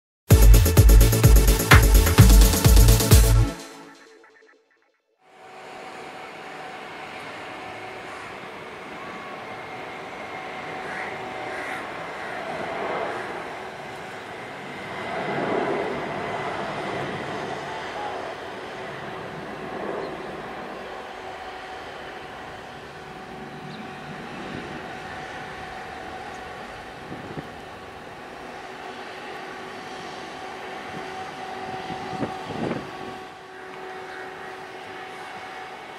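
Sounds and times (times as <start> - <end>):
distant jet engine rumble: 5.4 - 35.9.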